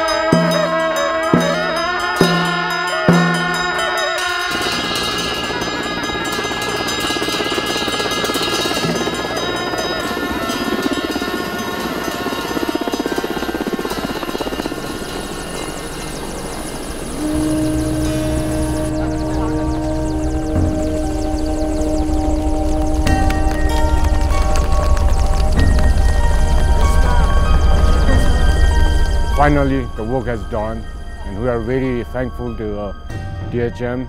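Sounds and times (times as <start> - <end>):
helicopter rotor beating: 0.0 - 33.4
low steady musical drone: 0.0 - 34.0
long held horn notes: 17.0 - 24.7.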